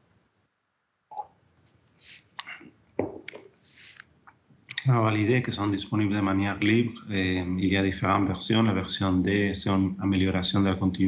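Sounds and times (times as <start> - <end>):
mouth clicks: 1.1 - 1.4, 2.4 - 4.9
man speaking: 4.7 - 11.0.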